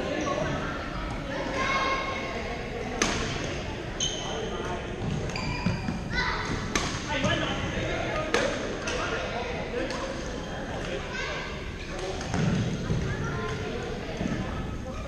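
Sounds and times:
rackets striking shuttlecock: 3.0s - 3.4s, 6.7s - 7.1s
shoes squeaking on sports floor: 4.0s - 6.1s.

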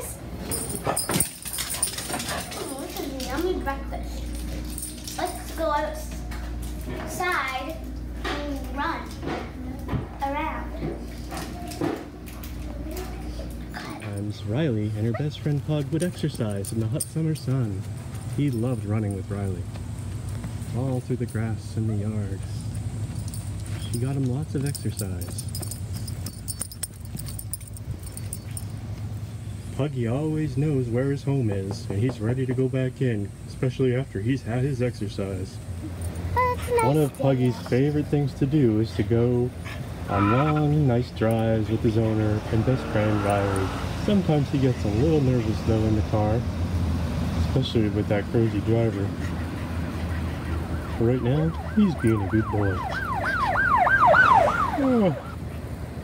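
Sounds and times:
leash clip jingling: 0.4s - 6.8s, 13.9s - 29.4s, 35.8s - 38.6s
dog whimpering: 15.0s - 15.6s, 35.8s - 37.9s, 39.6s - 40.8s, 48.8s - 52.2s.

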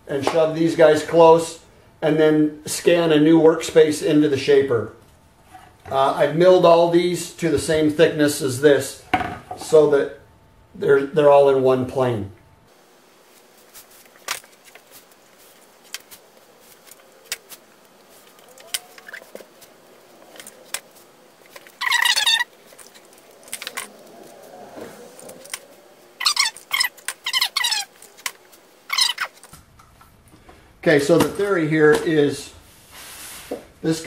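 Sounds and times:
tape screeching off roll: 18.2s - 29.5s.

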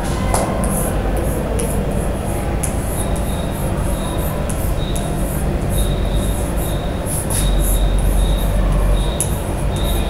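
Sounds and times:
loud low rumble: 0.0s - 10.0s.

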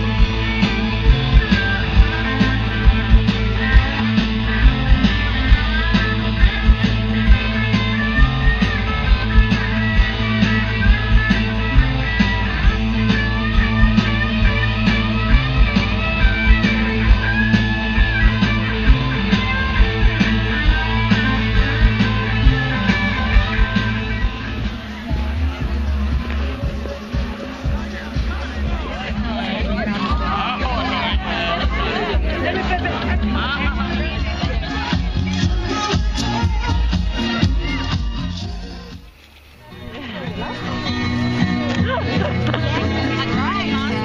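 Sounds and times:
live rock band playing: 0.0s - 44.0s.

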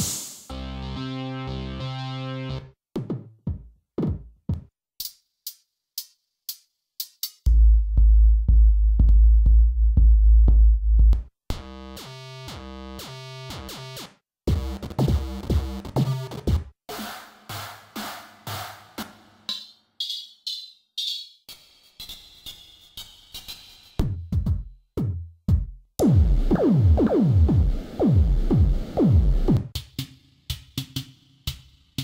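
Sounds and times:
synthesizer hi-hat hits: 26.0s - 29.9s.

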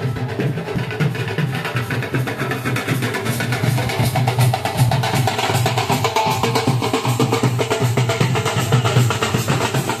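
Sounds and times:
barrel drums beating: 0.0s - 10.0s
snare-like side drums: 0.0s - 10.0s.

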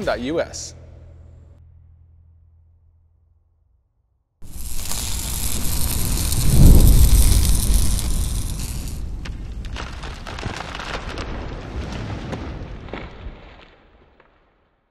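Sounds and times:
rushing fiery hiss: 4.4s - 10.8s
sparking crackles: 4.4s - 14.8s.

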